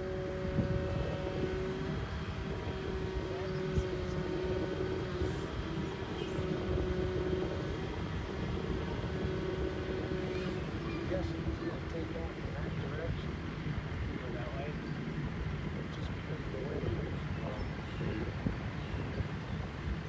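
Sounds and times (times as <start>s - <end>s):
distant propeller engine droning: 0.0s - 20.0s
wind rumble on microphone: 0.0s - 20.0s.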